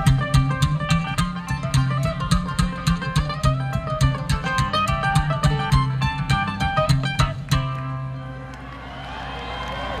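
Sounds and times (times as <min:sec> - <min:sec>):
bluegrass string-band music: 0:00.0 - 0:08.6.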